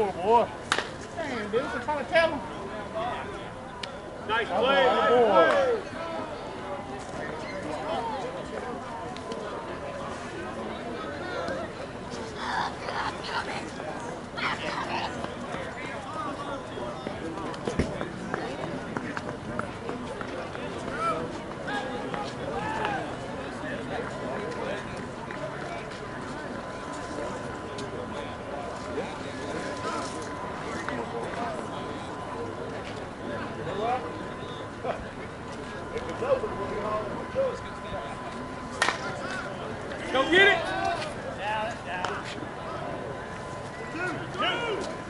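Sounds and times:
players shouting: 0:04.2 - 0:06.5, 0:43.7 - 0:45.0
bat hitting ball: 0:38.8 - 0:39.0.

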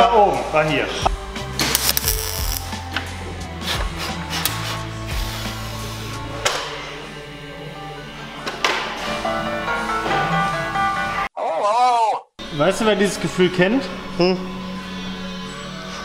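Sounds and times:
background music: 0:00.0 - 0:11.3, 0:12.4 - 0:16.0
welding torch crackling: 0:01.7 - 0:02.7.

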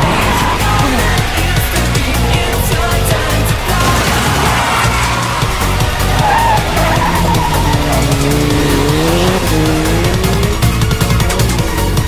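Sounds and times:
music with pulsing bass beat: 0:00.0 - 0:12.0
race car engine revving: 0:00.0 - 0:12.0
tyre squeal: 0:04.4 - 0:09.4.

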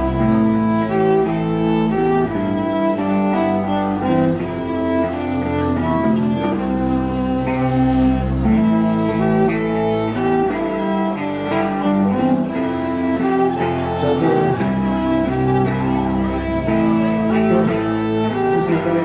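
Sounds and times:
live band playing slowly: 0:00.0 - 0:19.0.

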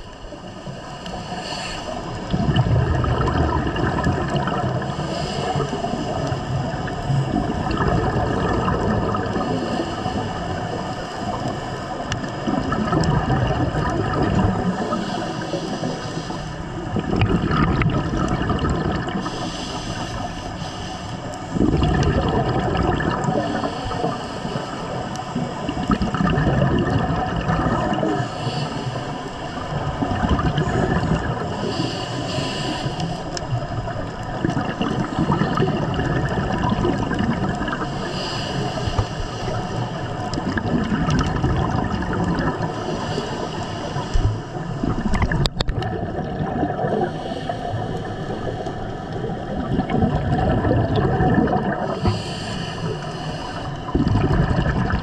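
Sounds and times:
exhaled air bubbles: 0:00.0 - 0:55.0
regulator breathing underwater: 0:00.0 - 0:55.0.

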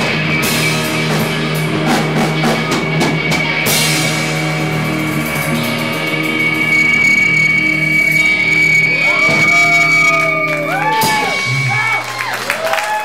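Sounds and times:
electric guitars ringing: 0:00.0 - 0:13.0
steady high tone: 0:01.6 - 0:12.1.

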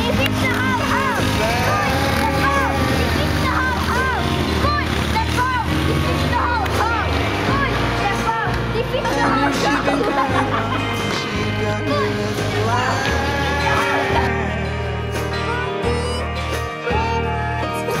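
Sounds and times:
song with held bass notes: 0:00.0 - 0:18.0
person singing: 0:09.2 - 0:18.0.

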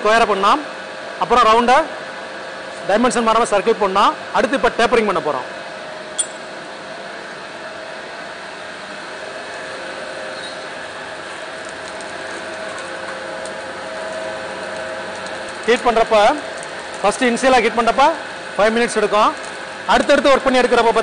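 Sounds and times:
forge air blower whirring: 0:00.0 - 0:21.0.

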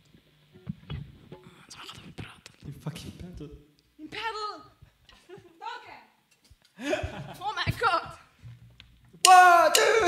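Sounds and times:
whispered talk: 0:01.4 - 0:03.5.

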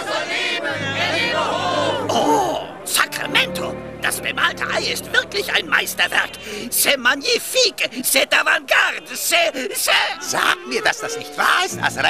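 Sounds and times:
crowd voices: 0:00.0 - 0:12.0
soft background music: 0:00.7 - 0:07.2, 0:11.1 - 0:12.0.

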